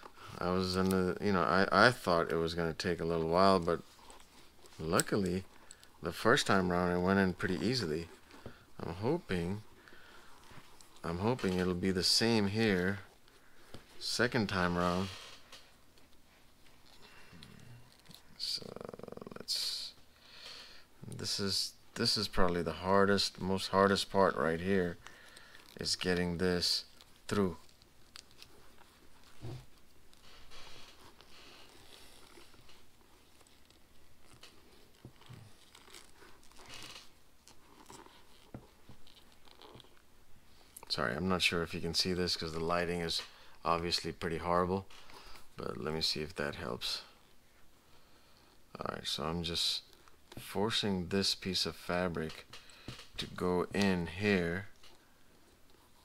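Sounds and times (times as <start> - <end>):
strap rustling: 0.0 - 20.1, 21.0 - 47.8
fabric rustling and scraping: 25.6 - 40.0.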